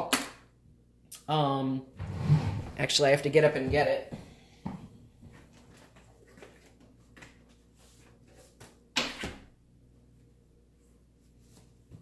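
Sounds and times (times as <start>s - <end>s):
faint knocks and shuffles: 10.2s - 12.0s.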